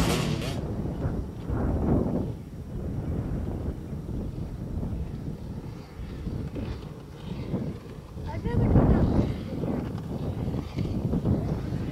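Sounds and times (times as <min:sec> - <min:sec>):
distant motorcycle engine droning: 0:00.0 - 0:01.0
wind rumble on microphone: 0:00.0 - 0:11.9.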